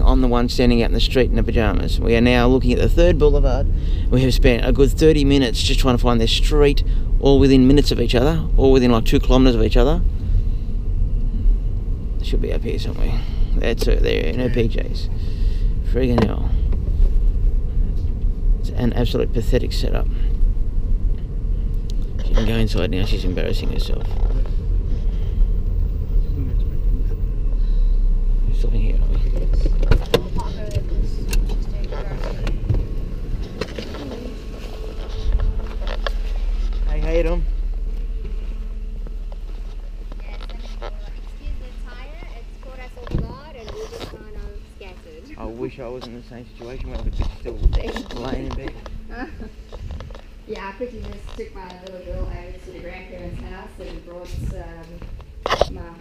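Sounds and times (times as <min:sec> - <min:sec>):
car engine rumble: 0:00.0 - 0:56.0
faint steady hum: 0:00.0 - 0:56.0
road noise: 0:00.0 - 0:56.0.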